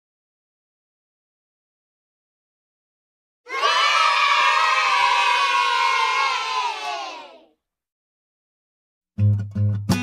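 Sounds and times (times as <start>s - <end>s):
crowd cheering and yelling: 3.5s - 7.5s.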